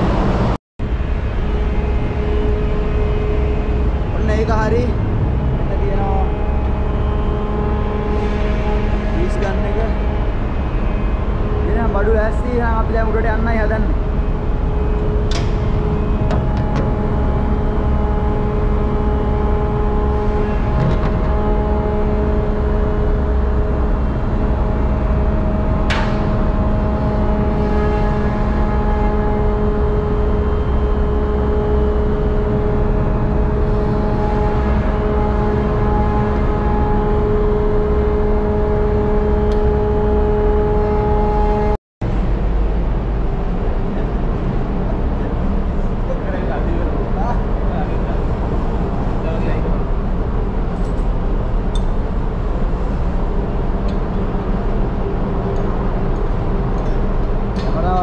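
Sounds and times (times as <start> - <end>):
engine-room machinery drone: 0.0 - 58.0.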